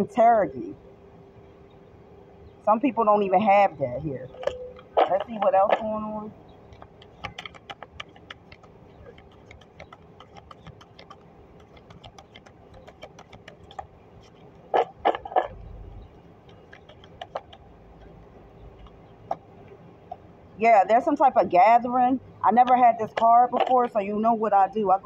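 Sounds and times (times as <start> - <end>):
cards being shuffled: 6.8 - 15.5, 16.5 - 17.6.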